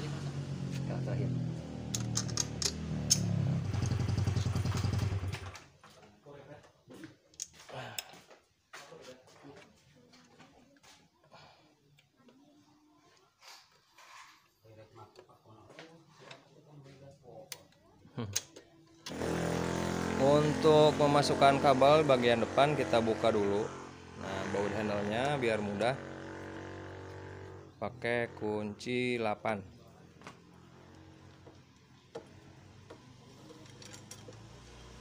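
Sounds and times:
motorcycle engine running: 0.0s - 5.6s, 19.1s - 28.9s, 30.2s - 35.0s
tool clicks and taps: 1.9s - 3.3s.

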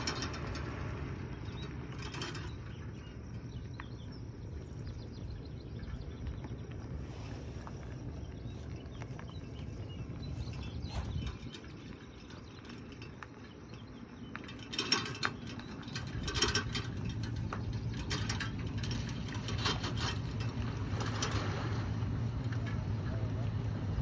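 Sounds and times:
metal trailer rattling and clanking: 0.0s - 3.8s, 9.9s - 24.0s
truck engine running: 0.0s - 24.0s.

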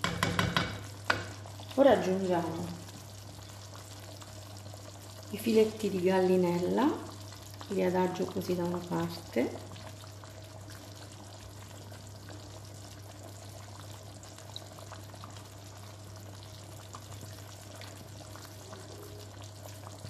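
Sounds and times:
soup bubbling in a pot: 0.0s - 20.0s.

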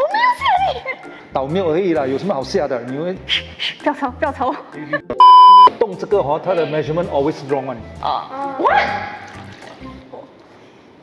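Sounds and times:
electronic censor bleep: 5.2s - 5.7s.

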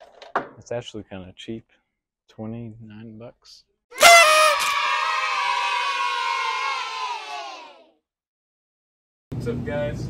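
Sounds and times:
children cheering: 4.0s - 7.8s.

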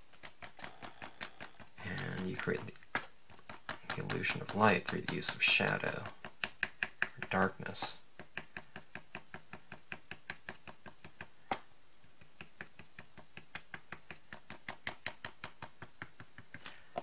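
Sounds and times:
ink applicator tapping on cardstock: 0.2s - 17.0s.

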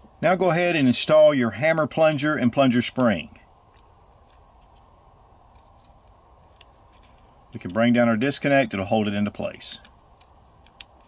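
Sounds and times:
low steady hiss: 0.0s - 11.0s
light clicks of steel parts: 2.9s - 4.9s, 5.5s - 8.8s, 9.4s - 11.0s.

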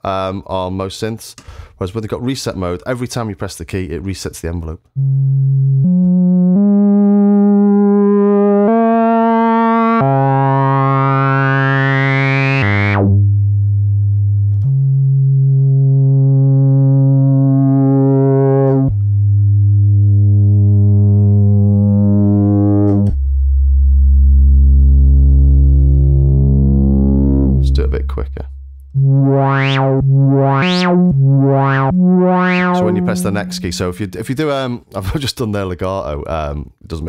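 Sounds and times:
synthesizer sustained notes: 5.0s - 23.1s, 23.9s - 34.2s.

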